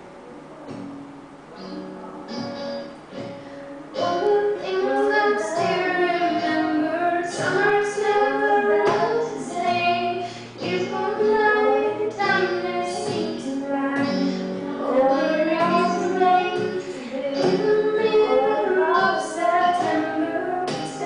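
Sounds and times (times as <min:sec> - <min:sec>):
strummed acoustic guitar: 0:00.6 - 0:21.0
woman singing: 0:03.9 - 0:21.0.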